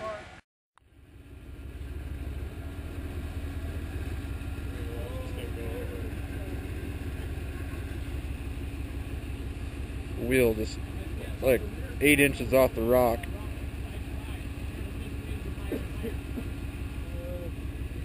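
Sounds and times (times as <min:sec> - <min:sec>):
buggy engine running steadily: 0:00.8 - 0:18.0.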